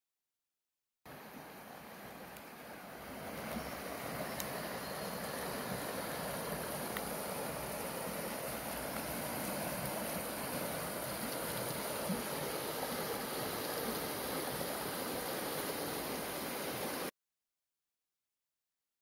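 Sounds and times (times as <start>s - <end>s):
creek rushing over boulders: 1.1s - 17.1s.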